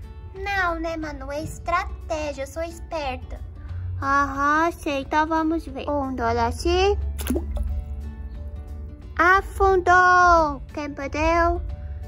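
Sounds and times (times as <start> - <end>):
toy splashing into water: 7.2 - 7.8.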